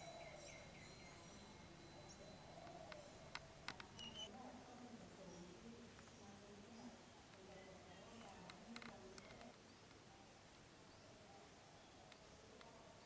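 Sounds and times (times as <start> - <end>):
faint high chirps: 0.0 - 4.3
faint sharp clicks: 2.6 - 4.1, 12.1 - 12.8.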